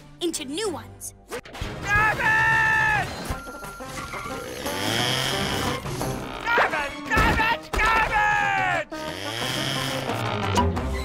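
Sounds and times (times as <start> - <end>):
background music: 0.0 - 11.0
whirring grinding machine effect: 4.2 - 6.3.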